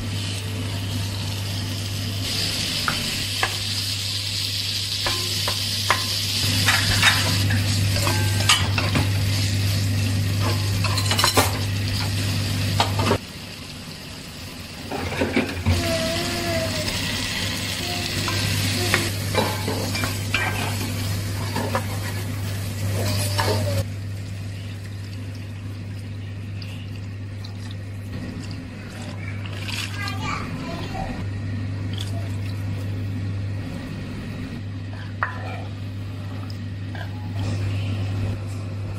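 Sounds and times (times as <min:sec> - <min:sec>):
food sizzling in hot oil: 0:00.0 - 0:26.5
steady low hum: 0:00.0 - 0:38.9.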